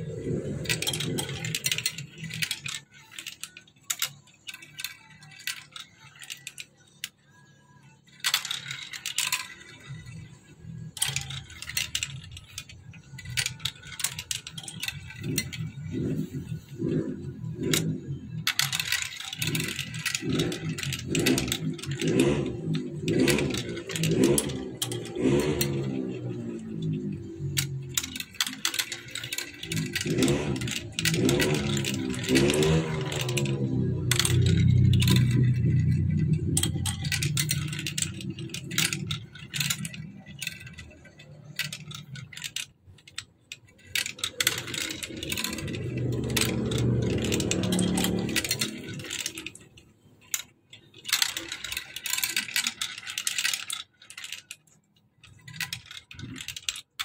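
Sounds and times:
balls rolling down marble run: 0.0s - 57.0s.

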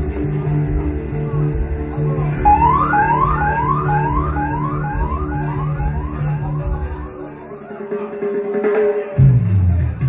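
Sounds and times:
dub music with heavy bass: 0.0s - 7.6s
dub siren whoop: 2.4s - 6.5s.

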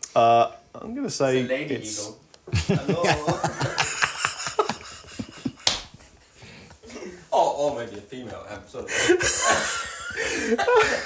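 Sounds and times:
men laughing: 2.5s - 7.3s, 8.8s - 11.0s.

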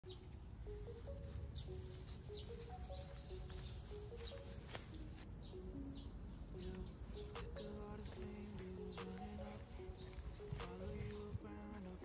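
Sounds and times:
high bird chirps: 0.0s - 11.4s
simple melody of held notes: 0.0s - 12.0s.

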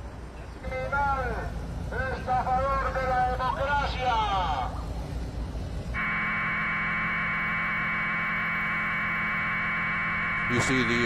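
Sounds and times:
low hum: 4.4s - 11.0s.

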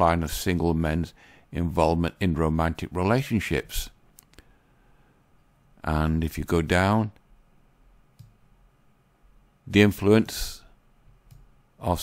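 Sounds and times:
faint computer mouse clicks: 8.1s - 8.4s, 11.2s - 11.5s.

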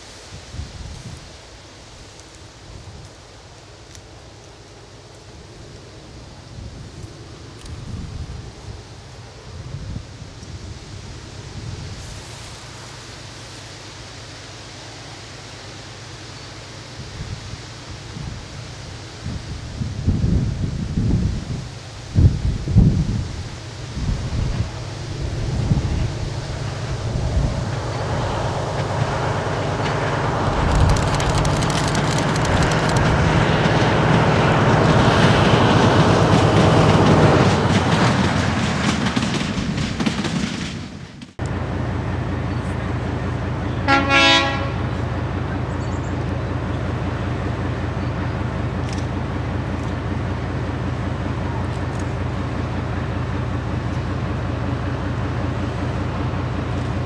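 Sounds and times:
diesel locomotive passing: 0.0s - 57.0s
diesel locomotive running: 0.0s - 57.0s
heavy low rumbles: 22.1s - 39.8s
train horn toot: 43.7s - 45.1s.

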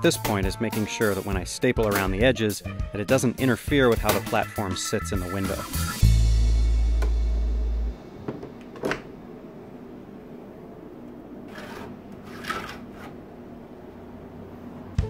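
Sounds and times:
low sustained background music: 0.0s - 8.2s.

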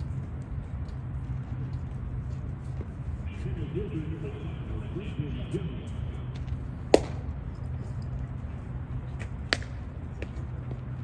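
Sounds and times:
low outdoor rumble: 0.0s - 11.0s
baseball popping into mitt: 6.9s - 7.2s, 9.5s - 9.8s.

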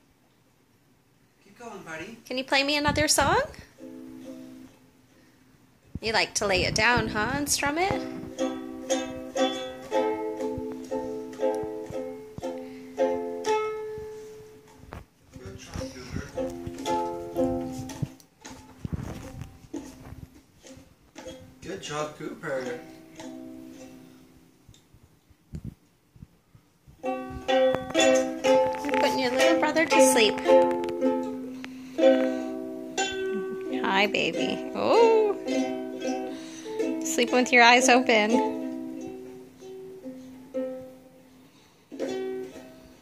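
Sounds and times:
ukulele strumming: 3.2s - 4.9s, 6.6s - 24.4s, 27.0s - 41.2s, 41.9s - 43.0s.

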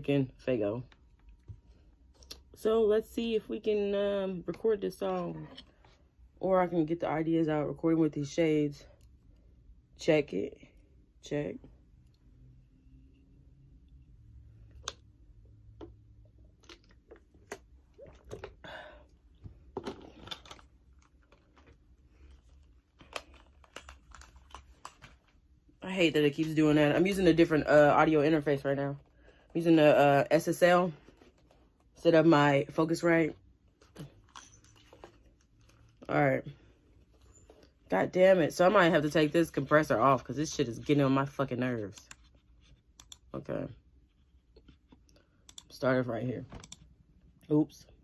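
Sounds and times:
low steady hum: 0.0s - 48.0s
headphone handling clicks and rustles: 19.4s - 25.4s.

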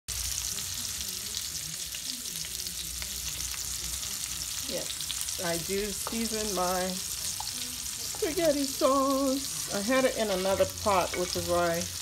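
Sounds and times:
sausages sizzling in a frying pan: 0.1s - 12.0s.

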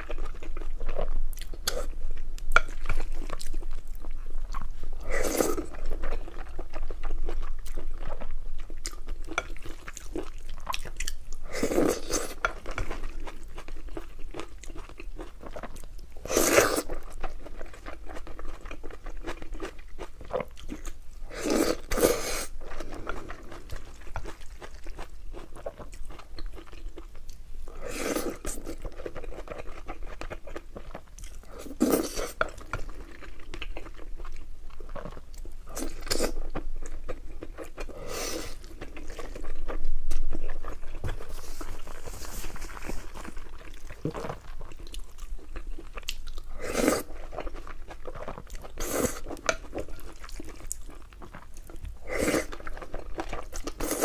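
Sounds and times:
person chewing wetly: 0.0s - 54.0s.

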